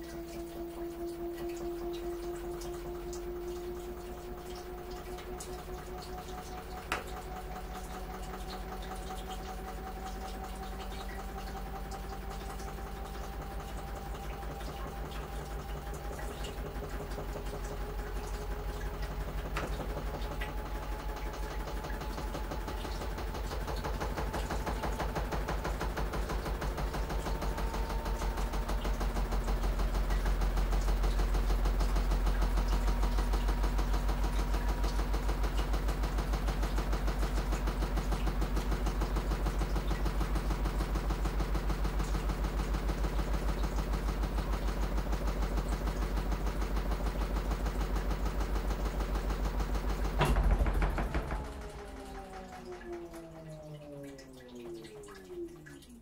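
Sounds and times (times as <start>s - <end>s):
washing machine running: 0.0s - 56.0s
washing machine click: 6.0s - 8.9s, 47.9s - 55.0s.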